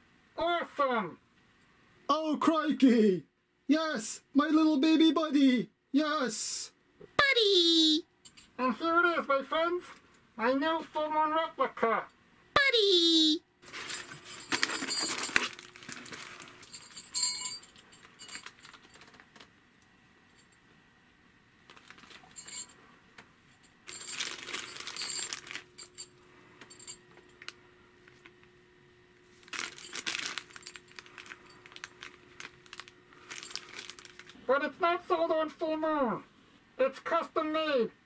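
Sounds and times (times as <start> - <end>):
small jingle bells jingling: 8.2 - 8.6, 13.7 - 19.2, 21.7 - 22.8, 23.5 - 27.5, 29.5 - 34.3
cardboard and plastic bag rustling: 13.6 - 19.5, 21.7 - 22.7, 23.8 - 26.1, 29.3 - 34.4.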